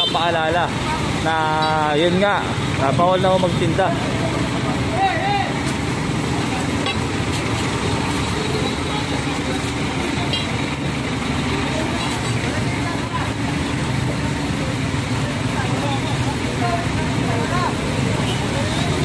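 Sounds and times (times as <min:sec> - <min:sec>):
street traffic: 0:00.0 - 0:19.0
truck engine idling: 0:00.0 - 0:19.0
scattered voices: 0:00.3 - 0:19.0.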